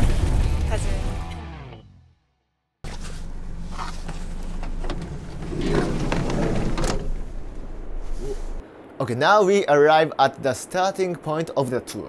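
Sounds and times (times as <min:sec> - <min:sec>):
gloved hand rustling on handle: 0:02.8 - 0:08.6
van engine humming: 0:02.8 - 0:08.6
sliding door unlatching clunk: 0:04.2 - 0:07.8.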